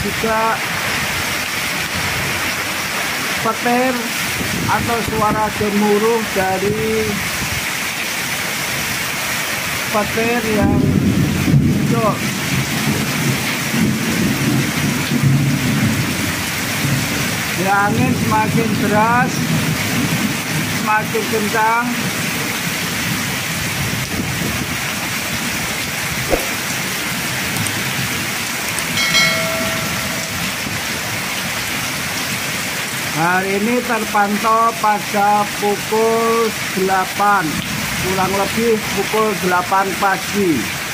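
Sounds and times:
heavy rain pouring: 0:00.0 - 0:40.9
water streaming off eave: 0:00.0 - 0:40.9
strong wind: 0:00.7 - 0:02.9, 0:04.2 - 0:05.7, 0:10.4 - 0:18.5, 0:22.1 - 0:32.1
short knock: 0:26.3 - 0:26.6
brief steady tone: 0:29.0 - 0:30.6.

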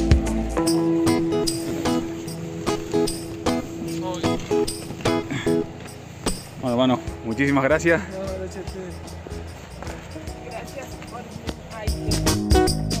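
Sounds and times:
background music with beat: 0:00.0 - 0:13.0.

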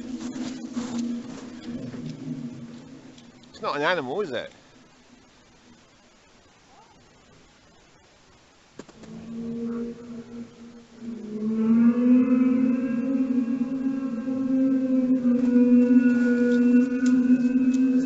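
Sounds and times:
trumpet-like droning tone: 0:09.1 - 0:18.0.

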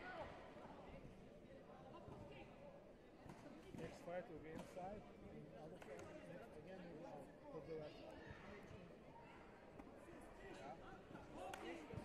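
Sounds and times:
faint voices in a large hall: 0:00.0 - 0:12.0.

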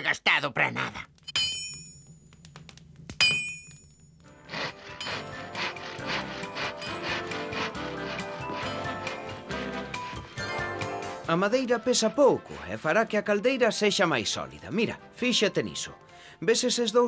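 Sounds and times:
hammer striking anvil: 0:01.3 - 0:02.1, 0:03.2 - 0:03.9
background music: 0:04.3 - 0:17.0.

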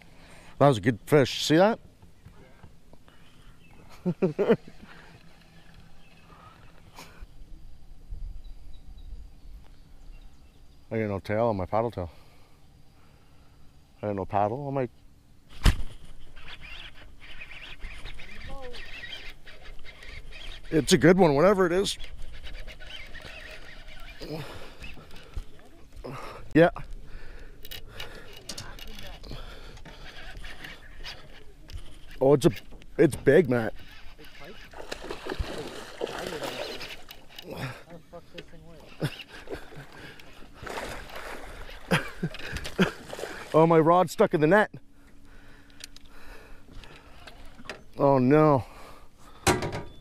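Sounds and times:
fishing reel whirring and clicking: 0:05.0 - 0:06.3, 0:16.3 - 0:25.7, 0:27.3 - 0:37.7, 0:38.4 - 0:42.8
water sloshing: 0:33.7 - 0:43.8
fish splashing at surface: 0:34.7 - 0:37.1.

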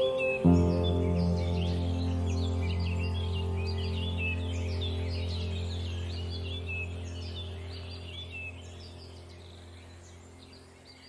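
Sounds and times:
low music drone: 0:00.0 - 0:11.0
small birds chirping: 0:00.0 - 0:11.0.

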